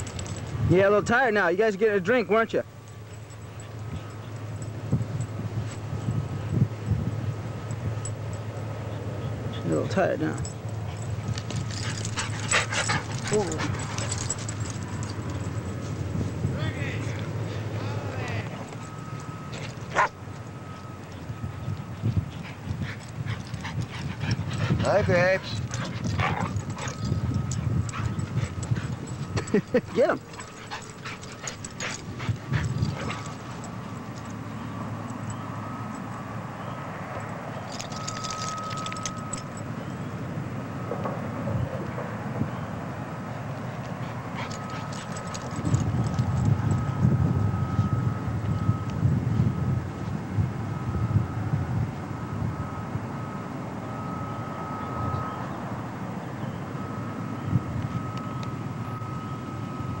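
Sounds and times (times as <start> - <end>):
dogs play-fighting vocalisations: 12.2 - 14.1.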